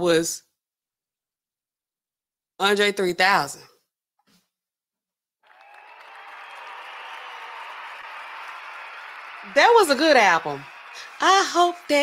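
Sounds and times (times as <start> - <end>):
applause and cheering: 5.4 - 12.0.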